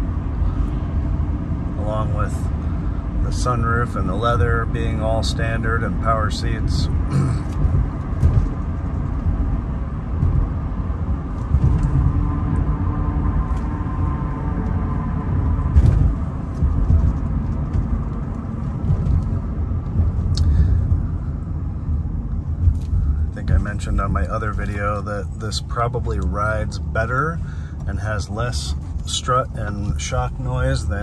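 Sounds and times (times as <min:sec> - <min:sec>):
car engine humming: 0:00.0 - 0:31.0
tyre and road rumble: 0:00.0 - 0:31.0.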